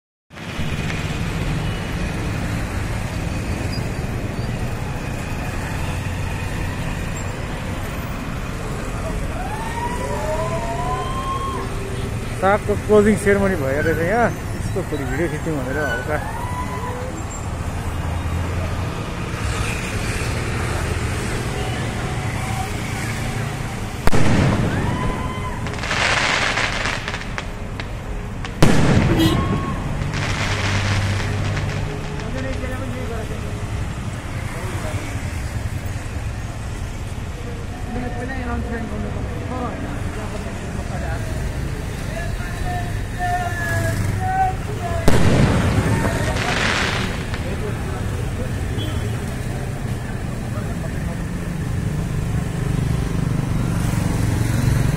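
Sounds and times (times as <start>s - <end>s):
firework bangs with echo: 24.0s - 32.7s, 45.0s - 47.8s
firework crackling: 24.0s - 33.1s, 44.7s - 48.3s
crowd voices: 37.3s - 51.6s.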